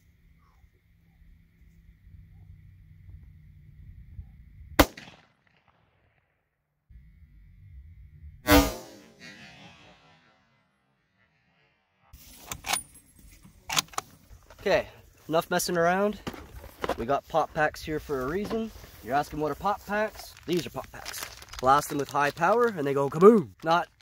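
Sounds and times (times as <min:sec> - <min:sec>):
rifle shots: 0:04.8 - 0:05.9, 0:08.5 - 0:10.2.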